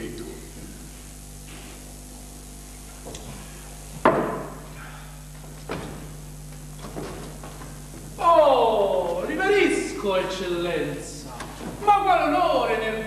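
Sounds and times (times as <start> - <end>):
steady low hum: 0.0 - 13.0
knocks: 4.0 - 4.6.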